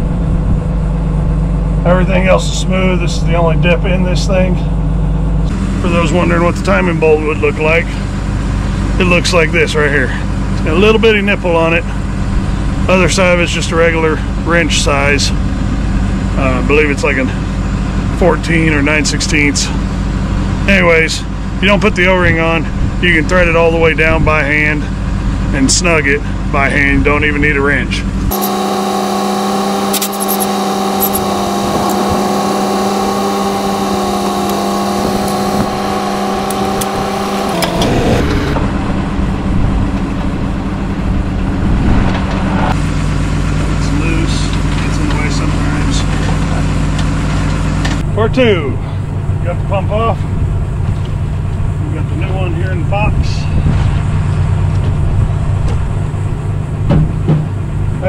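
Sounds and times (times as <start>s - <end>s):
engine-like drone: 0.0s - 58.0s.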